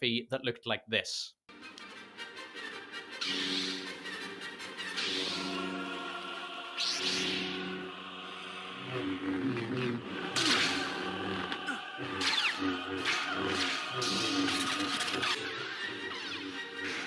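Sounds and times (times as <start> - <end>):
lightsaber hum: 3.2 - 17.0
orchestral music with choir: 4.4 - 17.0.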